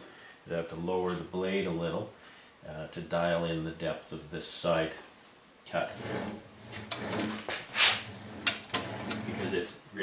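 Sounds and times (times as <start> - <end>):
saw blade sliding scrape: 5.9 - 9.6.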